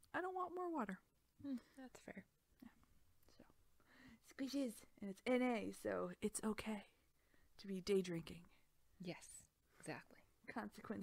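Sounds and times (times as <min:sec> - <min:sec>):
woman speaking: 0:04.2 - 0:07.0, 0:07.6 - 0:11.0.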